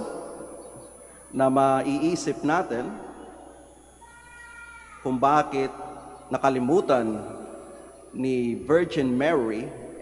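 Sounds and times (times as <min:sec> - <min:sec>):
faint high-pitched cry: 0:03.8 - 0:06.3.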